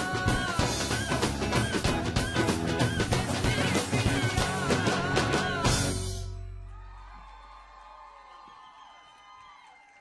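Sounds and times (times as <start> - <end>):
audience cheering: 6.6 - 10.0.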